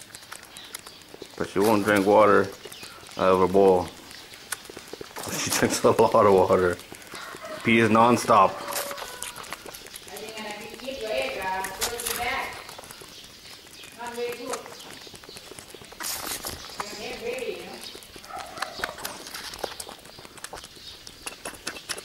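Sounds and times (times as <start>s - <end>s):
goat kid sucking a bottle: 0.0s - 22.0s.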